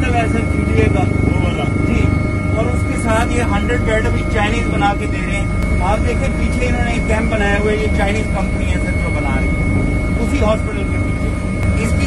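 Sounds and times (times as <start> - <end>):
helicopter engine and rotor: 0.0 - 12.0.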